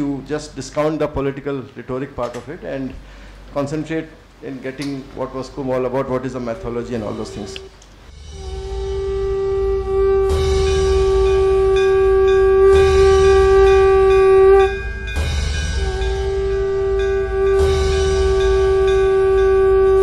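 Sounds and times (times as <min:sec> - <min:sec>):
conch shell blowing: 0:06.8 - 0:20.0
deep low rumble: 0:07.1 - 0:20.0.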